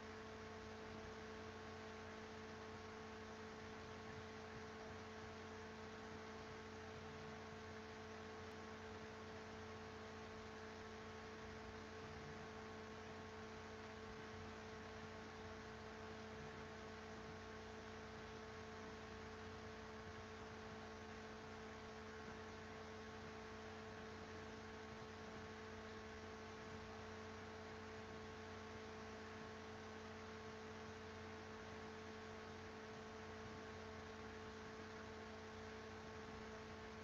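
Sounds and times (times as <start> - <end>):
faint electrical hum: 0.0 - 37.0.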